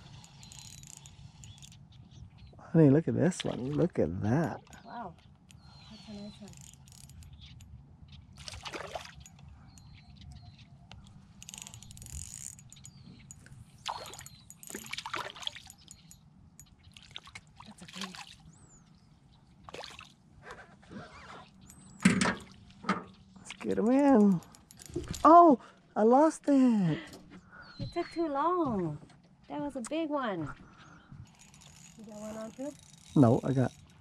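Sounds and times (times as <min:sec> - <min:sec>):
fish splashing in water: 0:08.4 - 0:09.2, 0:13.8 - 0:15.7, 0:19.7 - 0:20.2.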